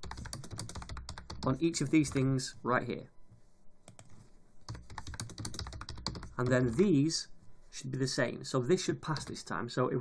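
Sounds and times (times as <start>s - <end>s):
computer keyboard typing: 0.0s - 2.3s, 3.9s - 6.9s, 9.0s - 9.5s.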